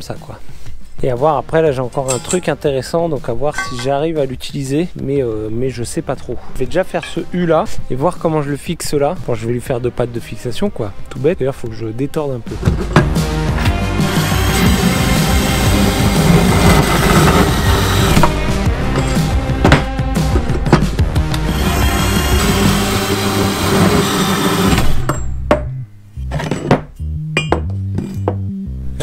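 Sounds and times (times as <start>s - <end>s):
background music: 0.0s - 29.0s
band saw cutting steel: 13.6s - 19.5s, 21.3s - 25.2s.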